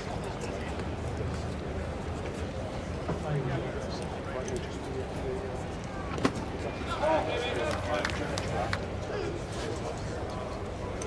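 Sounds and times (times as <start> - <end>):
ballpark background noise: 0.0 - 11.0.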